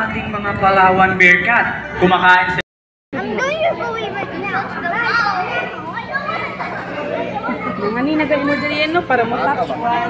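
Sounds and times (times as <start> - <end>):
children shouting answers: 3.2 - 8.9.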